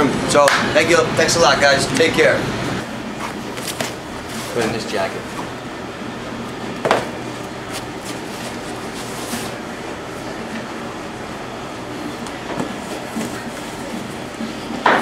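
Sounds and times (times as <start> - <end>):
room noise: 0.0 - 15.0.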